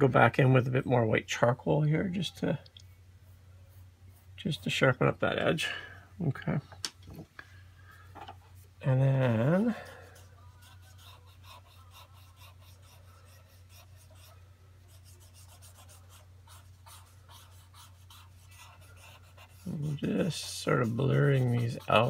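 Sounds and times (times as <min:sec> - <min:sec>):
steady low hum: 0:00.0 - 0:22.0
pencil scratching on paper: 0:09.3 - 0:22.0.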